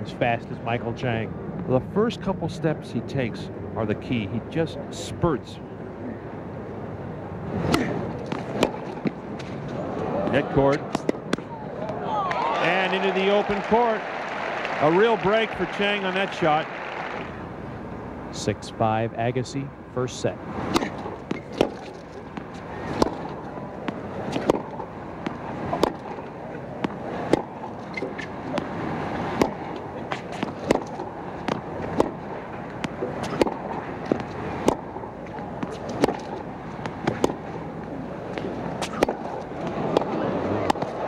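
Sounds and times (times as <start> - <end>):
crowd noise: 7.4 - 41.0
tennis racket strikes: 7.6 - 9.6, 20.7 - 26.2, 26.8 - 37.5, 38.4 - 41.0
tennis ball bouncing: 7.6 - 13.8, 20.7 - 41.0.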